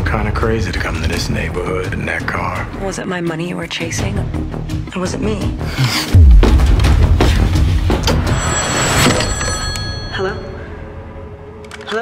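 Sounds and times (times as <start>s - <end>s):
old telephone bell ringing: 8.1s - 11.2s.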